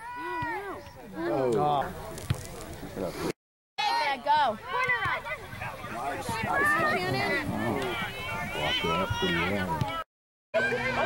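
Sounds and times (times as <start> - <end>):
spectators calling out: 3.8 - 10.0.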